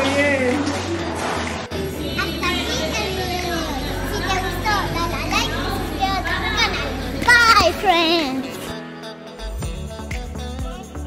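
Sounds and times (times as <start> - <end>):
girls talking and calling out: 1.7 - 8.7
steady low hum: 1.7 - 8.7.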